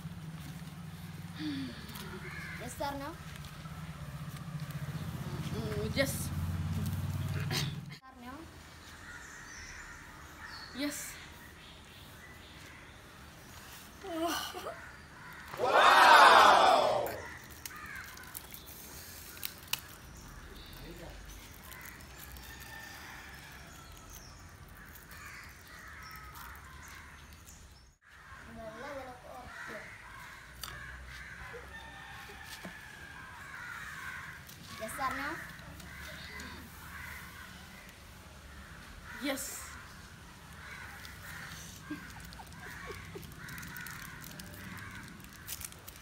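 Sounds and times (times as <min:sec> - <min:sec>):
birds calling: 0:08.6 - 0:32.1, 0:32.8 - 0:46.0
voices shouting: 0:15.5 - 0:17.4
boy's voice: 0:28.5 - 0:29.9.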